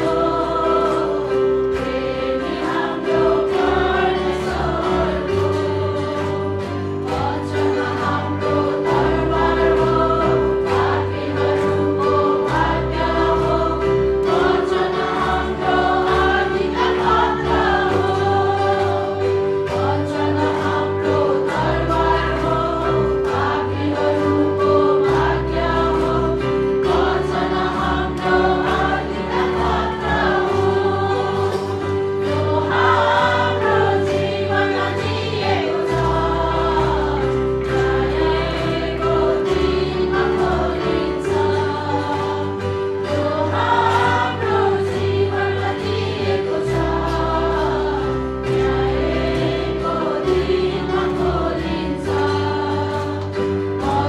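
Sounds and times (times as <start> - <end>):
women singing in unison: 0.0 - 54.0.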